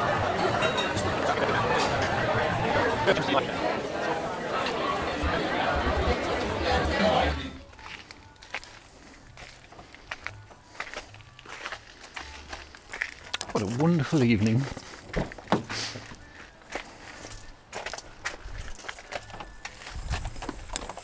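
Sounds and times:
many people talking: 0.0s - 21.0s.

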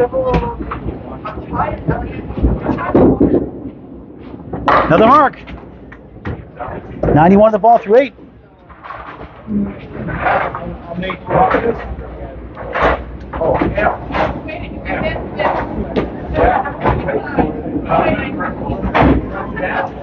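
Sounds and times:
people talking: 0.0s - 3.5s, 4.7s - 5.4s, 6.4s - 8.8s, 9.5s - 20.0s
low rolling rumble: 0.0s - 20.0s
bowling balls knocking pins: 0.2s - 3.7s.

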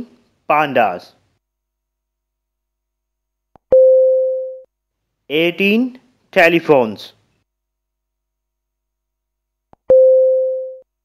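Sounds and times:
mid-pitched electronic beep: 9.9s - 10.8s.

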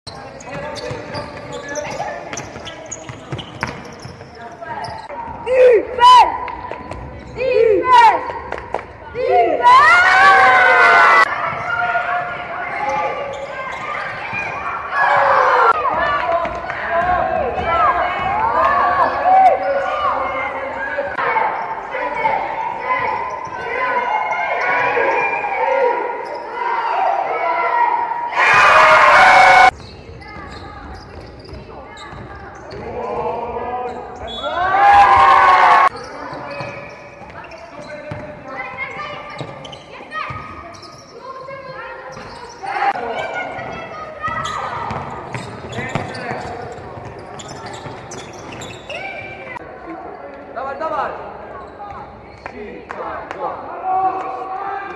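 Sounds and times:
shoe squeaks: 0.1s - 5.2s, 12.6s - 14.8s, 22.8s - 25.2s, 26.2s - 26.6s, 29.7s - 34.7s, 35.9s - 51.0s
players shouting: 9.2s - 29.8s
basketball dribbling: 44.3s - 48.6s.

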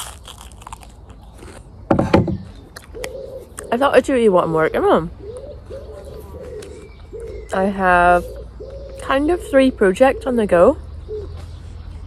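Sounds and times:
toast crunching: 0.0s - 3.7s
knock: 1.9s - 2.5s.

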